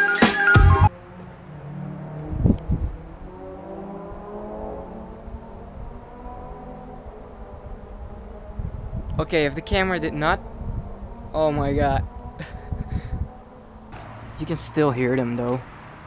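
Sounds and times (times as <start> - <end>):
distant car engines revving: 0.7 - 16.0.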